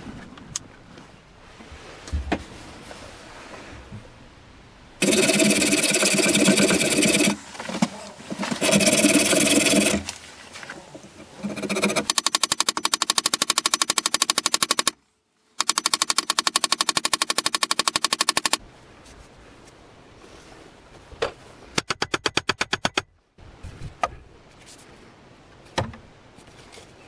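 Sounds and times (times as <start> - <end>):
hacksaw cutting: 5.0 - 7.4, 8.3 - 10.1, 11.2 - 14.9, 15.6 - 18.6.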